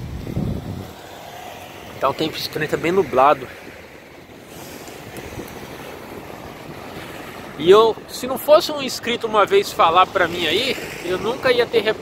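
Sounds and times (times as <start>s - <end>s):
car passing: 0.0s - 12.0s
steady traffic noise: 0.0s - 12.0s.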